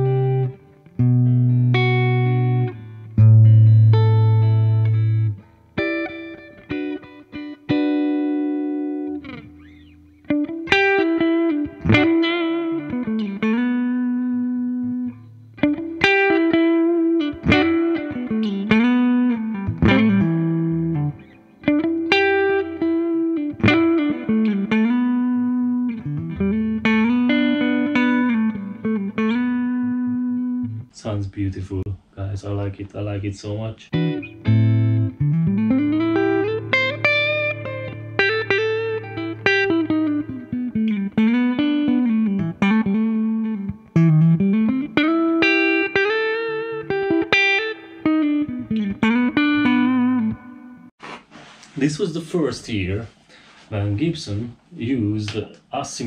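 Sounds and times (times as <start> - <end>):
electric guitar chords and lead lines: 0.0 - 30.9, 33.9 - 50.9.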